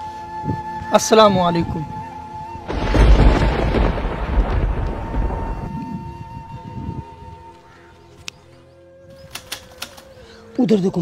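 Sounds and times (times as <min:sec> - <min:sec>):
background music drone: 0:00.0 - 0:11.0
thunder-like rumble: 0:02.7 - 0:07.0.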